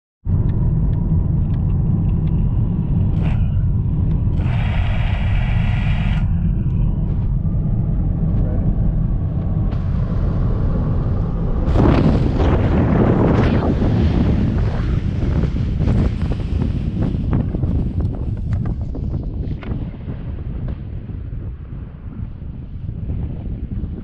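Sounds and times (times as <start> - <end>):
rush of noise: 0.3 - 24.0.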